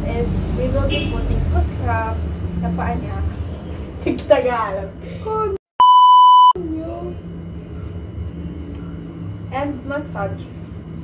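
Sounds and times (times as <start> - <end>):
censor bleep: 5.8 - 6.6.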